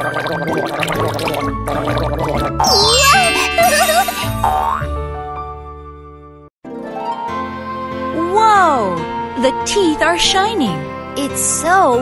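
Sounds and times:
cartoon gargling: 0.0s - 4.9s.

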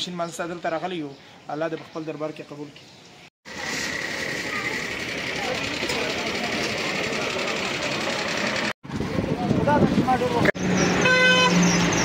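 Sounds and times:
street voices: 0.0s - 12.0s.

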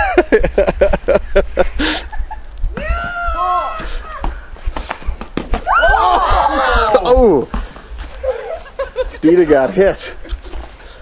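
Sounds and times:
girl shrieking loudly: 2.8s - 4.3s, 5.6s - 7.1s
teenagers shrieking and laughing: 5.6s - 7.4s, 8.0s - 10.7s.

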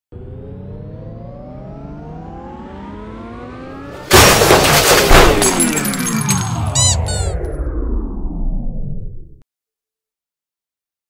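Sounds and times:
rising stack of tones: 0.1s - 4.1s, 5.5s - 9.4s
loud crash: 4.0s - 7.8s.

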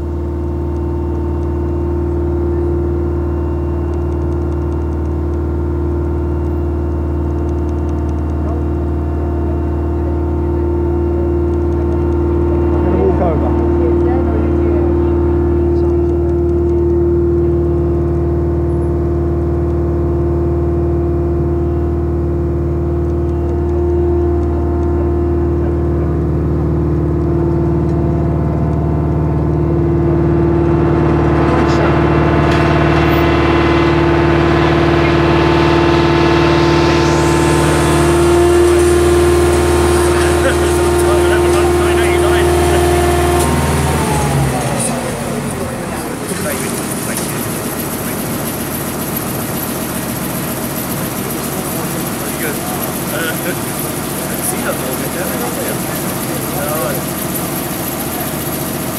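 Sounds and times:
engine idling: 0.0s - 58.9s
rushing noise: 30.7s - 56.5s.

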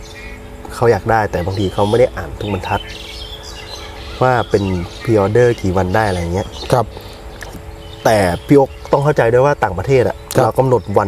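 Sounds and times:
birds chirping: 0.0s - 11.0s
man's voice: 0.7s - 2.9s, 4.2s - 6.9s.

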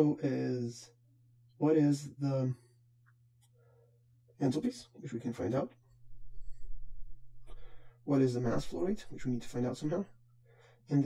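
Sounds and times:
steady low rumble: 6.0s - 10.2s
man breathing in: 7.4s - 8.0s, 10.4s - 10.9s.

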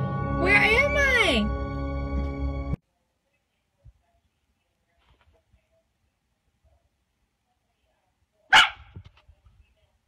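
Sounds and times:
dog barking: 8.5s - 9.0s.

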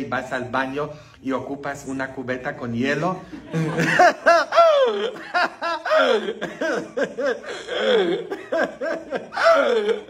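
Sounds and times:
man laughing: 3.3s - 10.0s.

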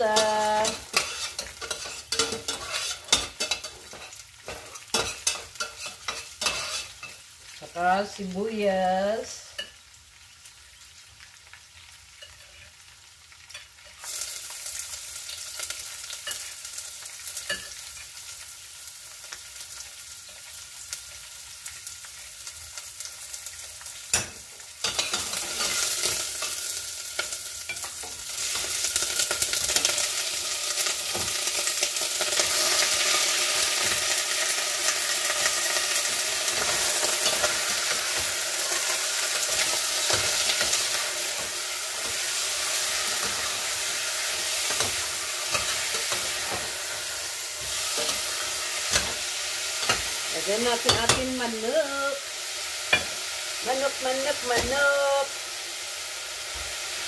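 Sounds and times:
chicken sizzling in a pot: 0.0s - 57.0s.

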